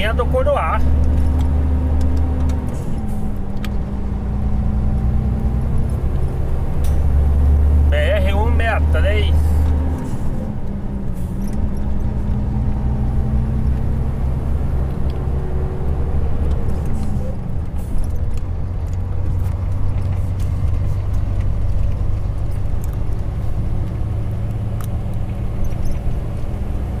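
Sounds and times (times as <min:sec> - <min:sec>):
diesel truck engine drone: 0:00.0 - 0:27.0
road noise: 0:00.0 - 0:27.0.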